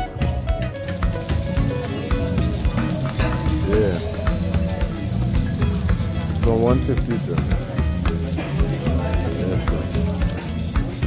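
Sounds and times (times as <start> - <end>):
music: 0.0 - 11.0
lobsters sizzling on hot plate: 0.8 - 11.0.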